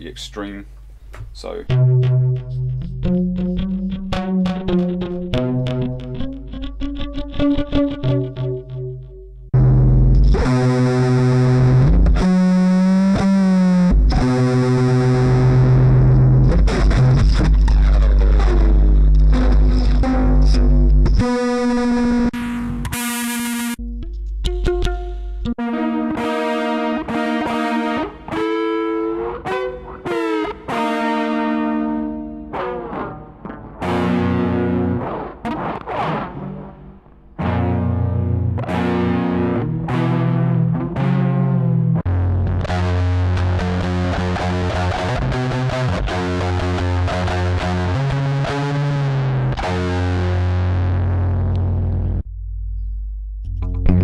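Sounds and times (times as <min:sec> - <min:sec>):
distorted plucked guitar notes: 0:01.2 - 0:54.0.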